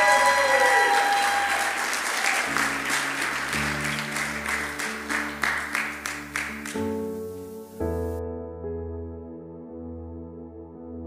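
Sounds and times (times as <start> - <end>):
congregation applauding: 0.0 - 7.1.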